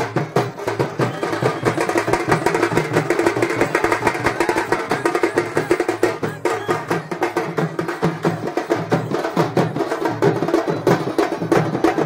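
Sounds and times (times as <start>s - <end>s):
fast loud drumming: 0.0s - 12.0s.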